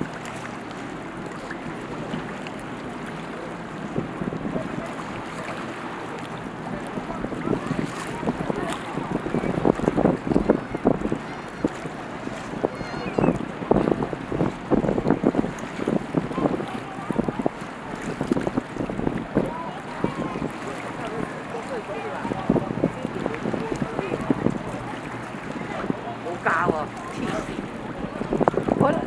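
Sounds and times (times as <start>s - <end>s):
water lapping and splashing: 0.0s - 29.0s
wind on microphone: 0.0s - 29.0s.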